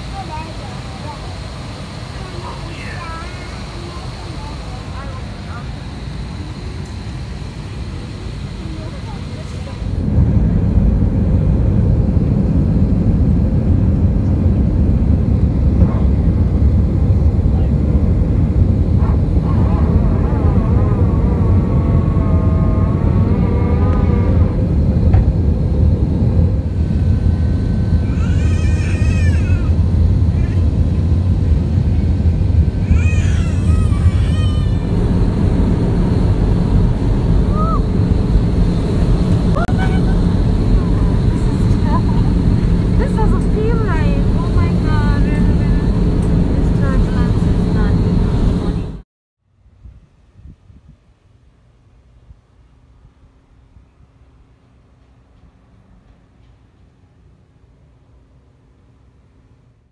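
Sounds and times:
voices: 0:00.0 - 0:10.1, 0:18.9 - 0:21.8, 0:32.8 - 0:49.0
jet engine rumble in cabin: 0:00.0 - 0:49.1
cabin hum: 0:00.2 - 0:49.0.

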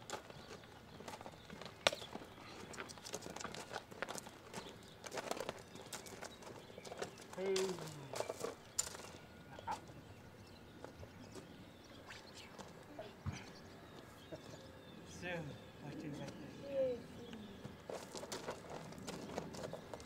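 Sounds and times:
horse hooves on gravel: 0:00.0 - 0:11.5, 0:17.5 - 0:20.0
person's voice: 0:07.4 - 0:08.2.

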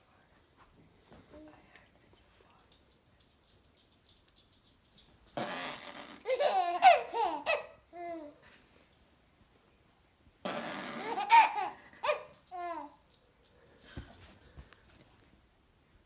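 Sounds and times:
baby laughing: 0:05.4 - 0:08.4, 0:10.8 - 0:13.0.

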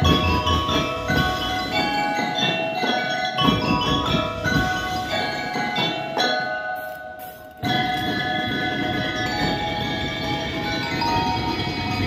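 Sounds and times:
drum and lyre corps playing: 0:00.0 - 0:12.0
drums: 0:00.0 - 0:12.0
mallet keyboard chord ringing: 0:00.0 - 0:12.0.

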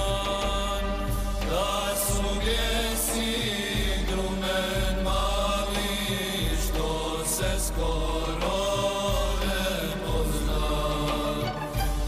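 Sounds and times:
choir singing devotional song: 0:00.0 - 0:12.0
deep bass layer: 0:00.0 - 0:12.0.

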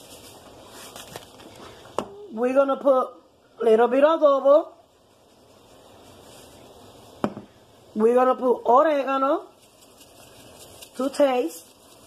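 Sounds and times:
water boiling in a pot: 0:00.0 - 0:12.0.

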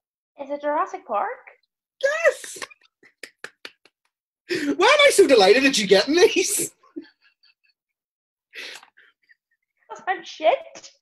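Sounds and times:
man laughing: 0:02.0 - 0:07.8.

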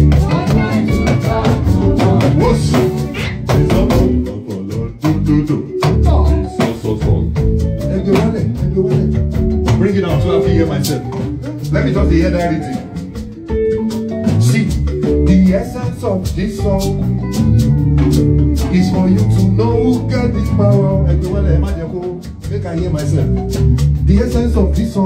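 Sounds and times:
live band with guitar and bass: 0:00.0 - 0:25.0
strong beats: 0:00.0 - 0:25.0.

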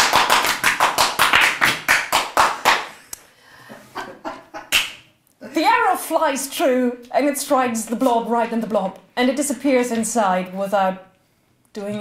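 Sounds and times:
hands clapping quickly: 0:00.0 - 0:03.2, 0:04.7 - 0:05.1.

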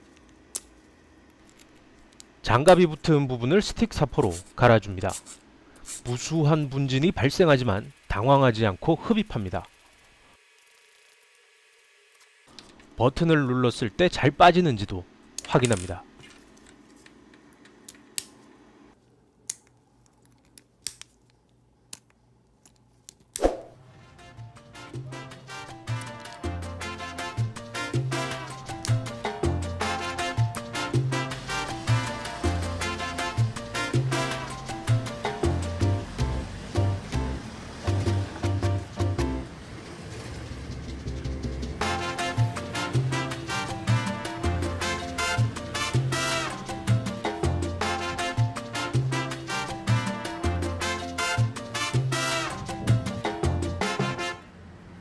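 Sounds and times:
background music with a beat: 0:24.4 - 0:39.4, 0:41.2 - 0:54.2.

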